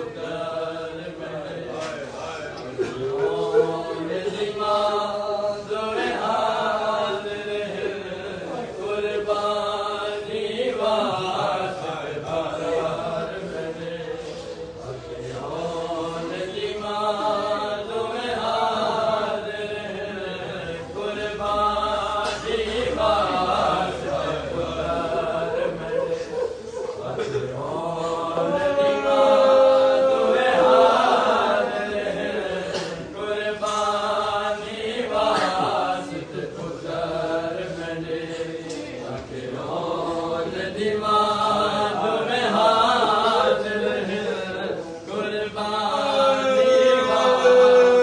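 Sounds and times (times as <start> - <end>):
men chanting a lament: 0.0 - 48.0.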